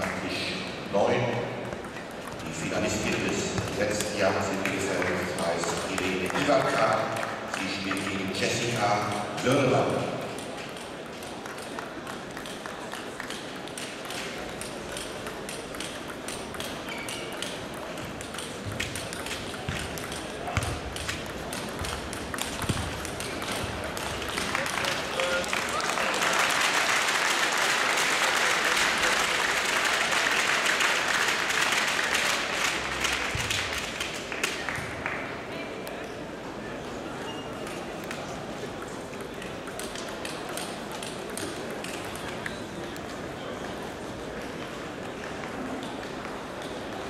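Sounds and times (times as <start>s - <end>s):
table tennis balls clicking: 1.6s - 25.5s, 37.6s - 47.0s
applause: 4.5s - 8.2s, 23.2s - 35.5s.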